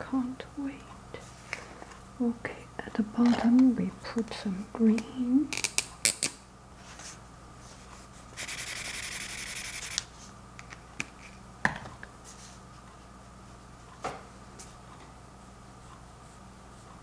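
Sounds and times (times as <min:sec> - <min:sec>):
paintbrush scrubbing on palette: 0:06.8 - 0:10.0.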